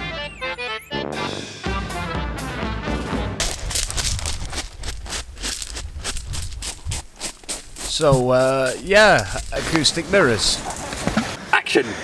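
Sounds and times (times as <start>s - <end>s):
music: 0.0s - 3.4s
train carriage rumble: 5.8s - 11.4s.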